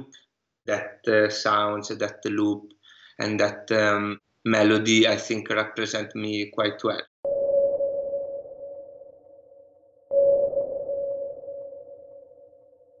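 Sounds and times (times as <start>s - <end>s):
sonar-like electronic pings: 7.2s - 13.0s.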